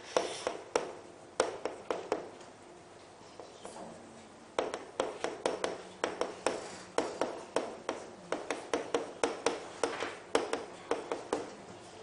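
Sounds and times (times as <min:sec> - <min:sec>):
chalk tapping and scraping on board: 0:00.0 - 0:02.4, 0:04.6 - 0:11.6.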